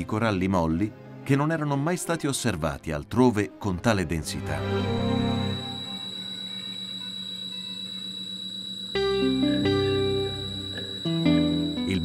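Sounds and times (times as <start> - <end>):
ambient electronic drone music: 4.4 - 8.3, 8.9 - 12.0.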